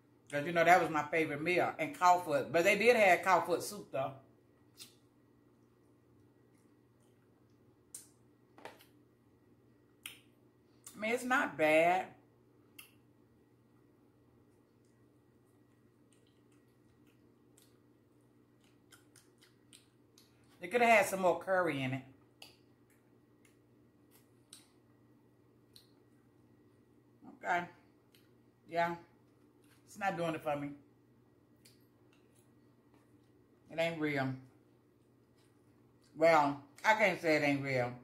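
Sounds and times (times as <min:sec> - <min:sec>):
faint room hum: 0:00.0 - 0:38.0
mouth smacks chewing: 0:14.6 - 0:20.6
sharp eating clicks: 0:18.5 - 0:20.4.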